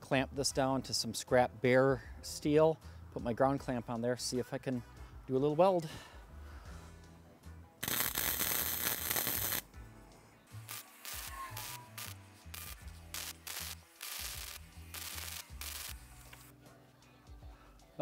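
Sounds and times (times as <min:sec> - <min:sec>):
welding arc crackling: 0:07.8 - 0:09.6, 0:10.6 - 0:16.5.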